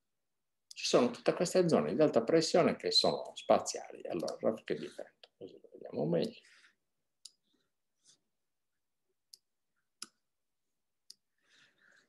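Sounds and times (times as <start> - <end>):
computer mouse clicks: 4.2 - 4.5
faint breathy noise: 11.3 - 12.0.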